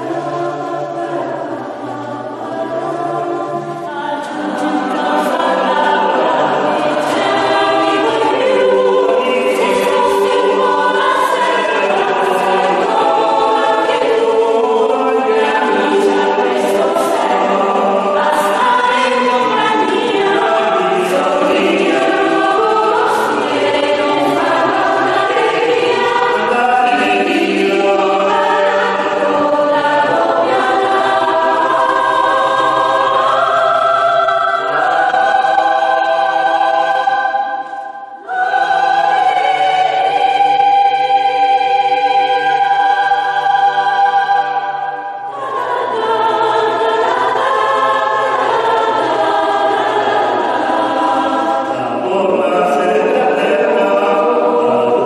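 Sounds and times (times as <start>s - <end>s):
choir singing unaccompanied: 0.0s - 55.0s.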